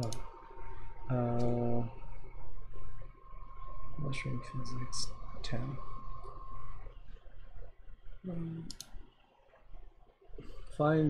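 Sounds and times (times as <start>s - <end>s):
sharp clicks: 0.0s - 0.3s, 8.6s - 9.0s
faint steady tone: 0.0s - 11.0s.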